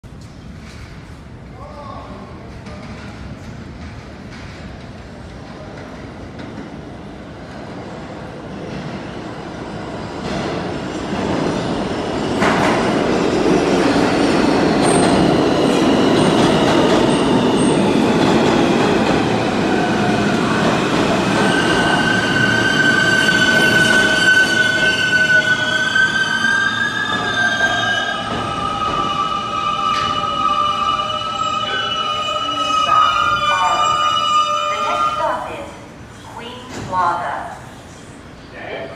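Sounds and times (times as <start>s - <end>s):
train wheels rumbling on rails: 0.1s - 34.1s.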